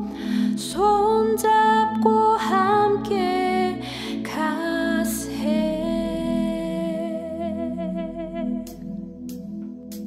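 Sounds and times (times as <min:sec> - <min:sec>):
soft instrumental accompaniment: 0:00.0 - 0:10.0
woman singing a long note: 0:00.6 - 0:08.8.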